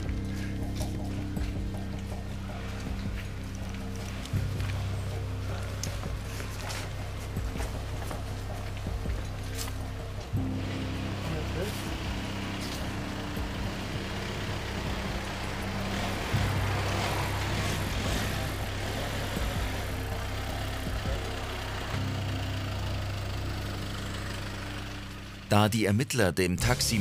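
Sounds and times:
street traffic: 0:00.0 - 0:27.0
sustained low music notes: 0:00.0 - 0:27.0.

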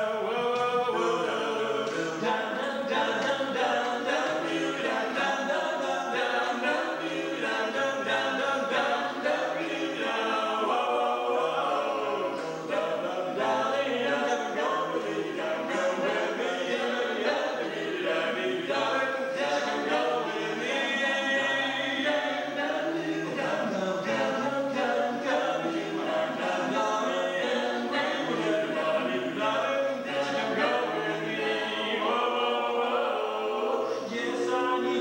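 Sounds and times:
barbershop quartet singing a cappella: 0:00.0 - 0:35.0.

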